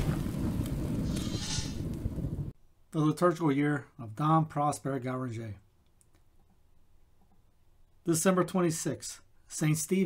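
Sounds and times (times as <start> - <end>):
low rumbling crackling boom: 0.0 - 2.6.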